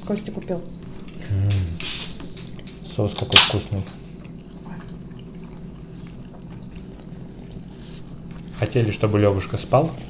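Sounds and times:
person humming: 0:01.2 - 0:01.9
can opening hiss: 0:01.8 - 0:02.2.

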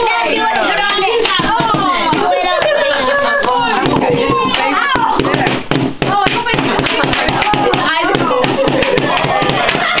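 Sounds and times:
voices talking over one another: 0:00.0 - 0:10.0.

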